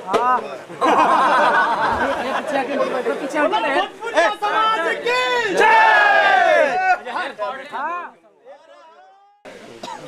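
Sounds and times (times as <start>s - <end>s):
loud drawn-out shout: 4.5s - 7.0s.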